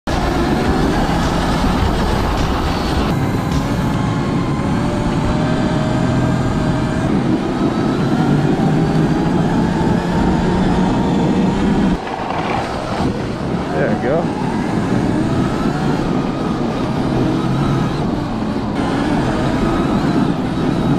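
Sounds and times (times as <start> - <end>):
snow track rumbling clatter: 0.0 - 20.9
electric motor whine: 0.1 - 20.9.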